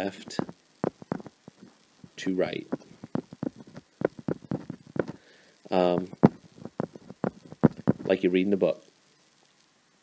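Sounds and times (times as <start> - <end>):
stylus tapping on tablet: 0.4 - 1.7, 2.7 - 5.2, 6.0 - 8.1.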